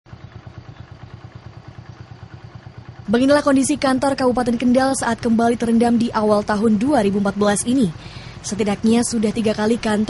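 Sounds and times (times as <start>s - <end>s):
small engine idling: 0.1s - 10.0s.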